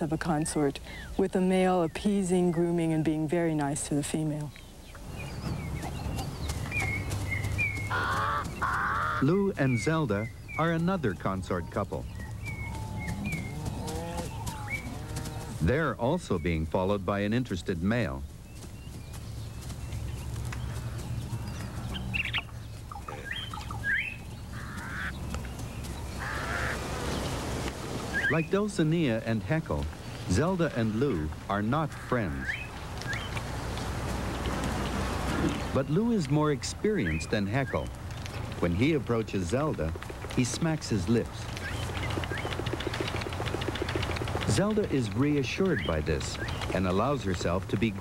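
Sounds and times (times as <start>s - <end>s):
birds chirping: 0.0s - 48.0s
low outdoor rumble: 0.0s - 48.0s
harsh rasping bird calls: 4.6s - 15.8s, 18.3s - 29.0s, 29.9s - 48.0s
steady low rumble: 9.5s - 26.4s
bird chirps gliding upward: 18.5s - 27.3s.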